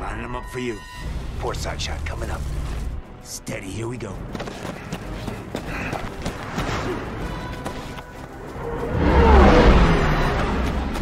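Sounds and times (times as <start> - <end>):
blizzard wind: 0.0 - 11.0
film soundtrack music: 0.0 - 11.0.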